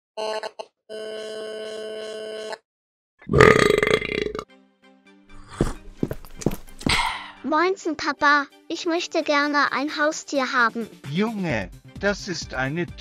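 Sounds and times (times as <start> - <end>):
loud human burp: 3.2 - 4.5.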